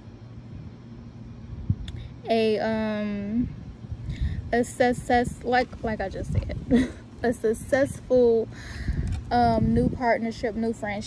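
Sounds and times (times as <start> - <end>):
distant engine rumble: 0.0 - 11.0
faint steady hum: 0.0 - 11.0.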